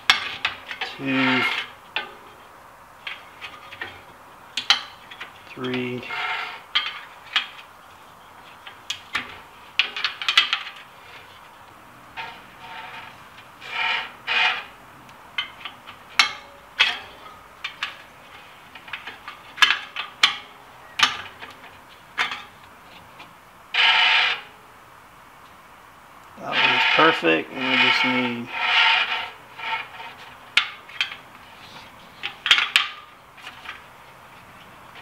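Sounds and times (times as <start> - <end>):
wheel scraping against gauge: 0.0 - 7.7, 8.4 - 14.8, 15.4 - 24.6, 26.4 - 35.0.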